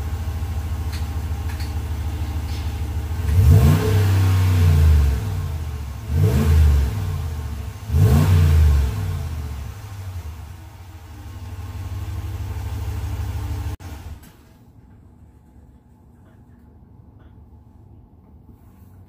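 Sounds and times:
truck engine idling and revving: 0:00.0 - 0:14.2.

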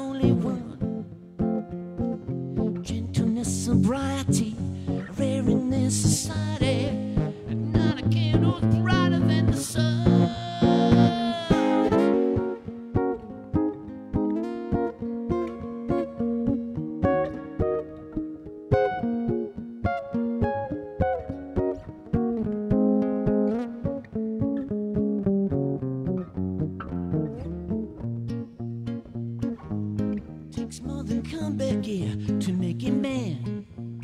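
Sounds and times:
acoustic guitar playing: 0:00.0 - 0:34.0.

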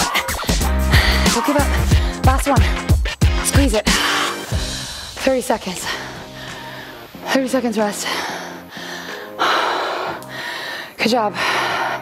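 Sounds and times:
background music held notes: 0:00.0 - 0:11.9
woman breathing hard: 0:00.1 - 0:05.2, 0:05.8 - 0:07.2, 0:08.0 - 0:12.0.

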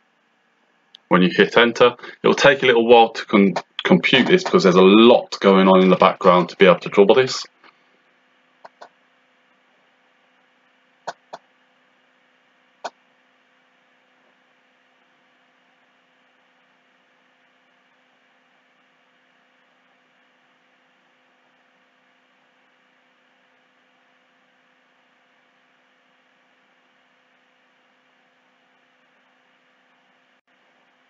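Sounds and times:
faint steady hum and hiss: 0:00.0 - 0:31.0.

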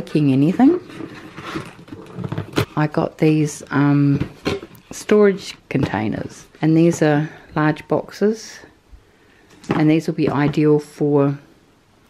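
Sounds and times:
cardboard box rustling and scraping: 0:00.5 - 0:02.8.

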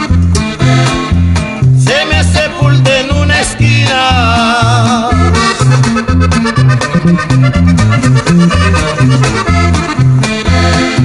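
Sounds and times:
accordion music with bass: 0:00.0 - 0:11.0.

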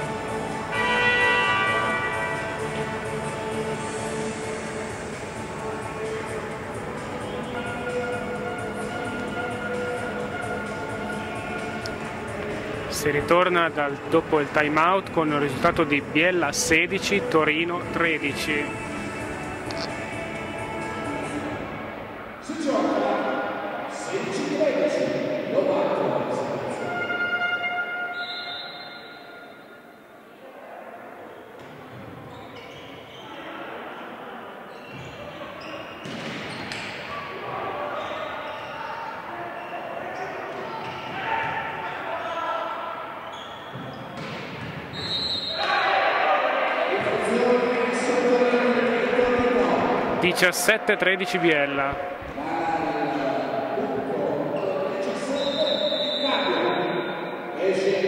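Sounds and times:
players shouting: 0:45.4 - 0:53.9
spectators cheering: 0:45.5 - 0:48.1.

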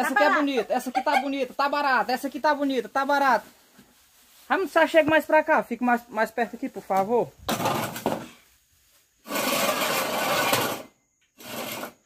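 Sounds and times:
chairs scraping on concrete: 0:07.4 - 0:08.4, 0:09.2 - 0:12.0.

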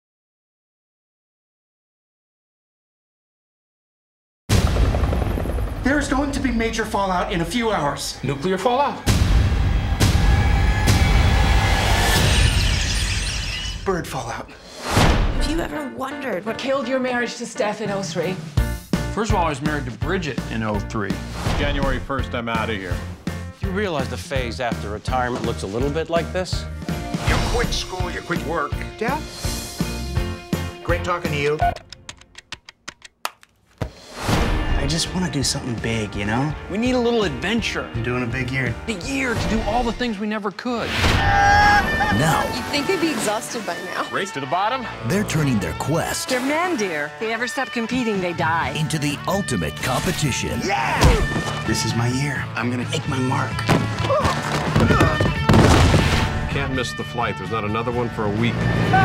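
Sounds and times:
sharp clicks: 0:31.7 - 0:33.6
man's voice: 0:44.2 - 0:46.3, 0:48.7 - 0:53.7.

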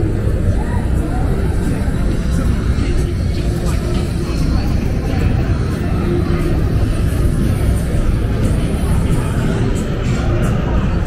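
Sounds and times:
indistinct voices of passers-by: 0:00.0 - 0:11.0
steady low rumble: 0:00.0 - 0:11.0.

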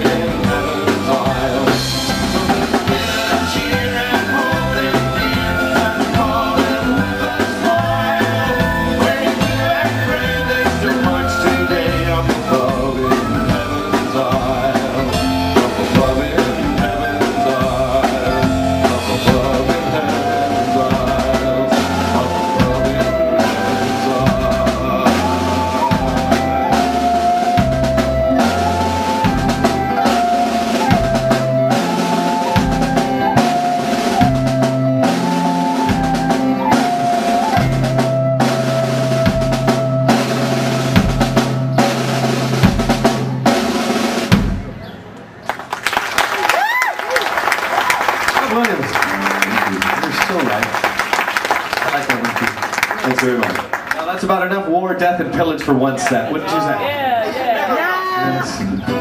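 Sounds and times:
folk-rock band playing: 0:00.0 - 0:45.5, 0:47.2 - 0:59.0.

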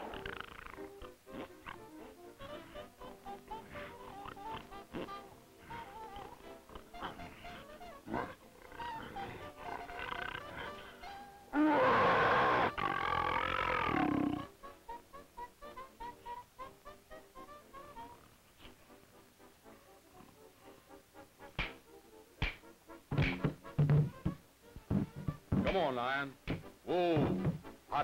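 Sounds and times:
cartoon background music: 0:00.0 - 0:28.0
cartoon lion roar: 0:05.6 - 0:10.9, 0:11.5 - 0:14.5.

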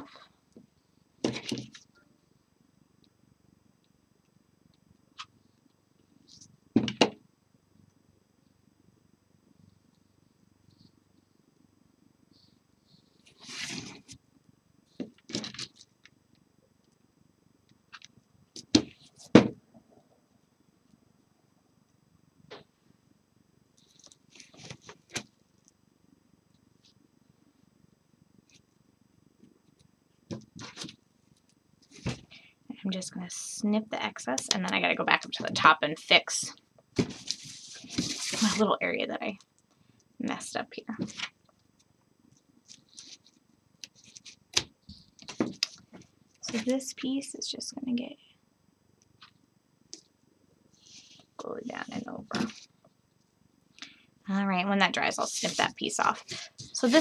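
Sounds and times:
fabric rustling: 0:55.2 - 0:57.0.

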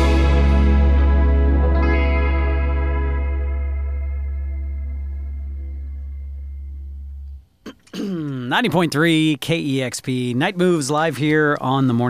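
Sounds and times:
electric and bass guitar chord: 0:00.0 - 0:07.4.

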